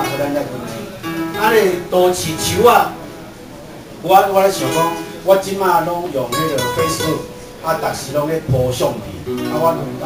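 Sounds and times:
acoustic guitar: 0.0s - 10.0s
man reciting through microphone: 1.4s - 3.0s, 4.1s - 10.0s.

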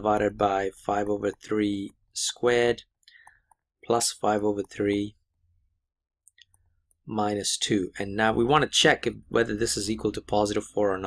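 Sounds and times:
person speaking: 0.0s - 5.3s, 6.3s - 11.0s
stylus tapping on tablet screen: 0.8s - 2.0s.

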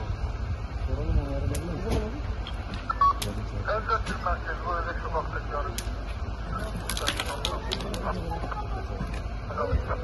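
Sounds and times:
voices talking: 0.8s - 10.0s
electronic beep: 2.9s - 3.3s.

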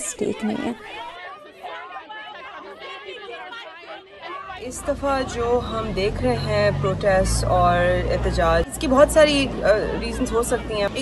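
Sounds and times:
crowd voices calling out: 0.0s - 11.0s.

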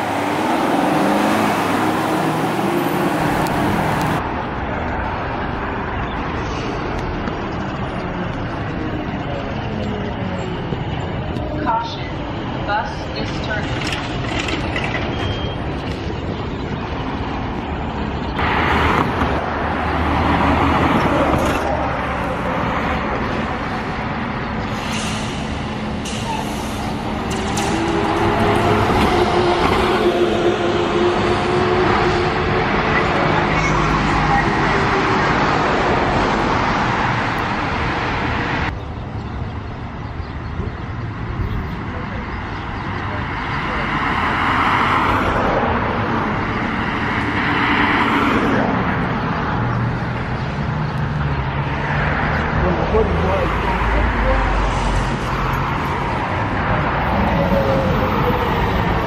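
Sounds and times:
road rumble: 0.0s - 59.0s
trolleybuses and cars passing: 0.0s - 59.0s.

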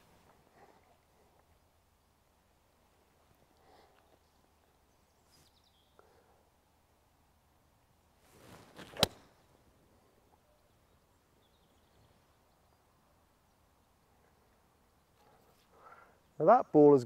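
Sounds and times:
golf club swish: 8.3s - 9.4s
golf club striking ball: 8.8s - 9.3s.

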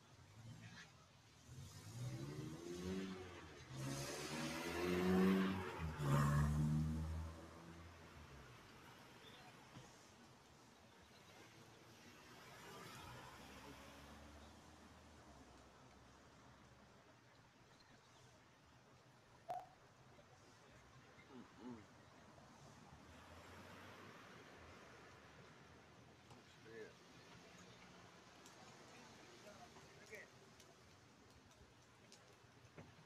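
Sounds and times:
car accelerating past: 1.4s - 8.0s.

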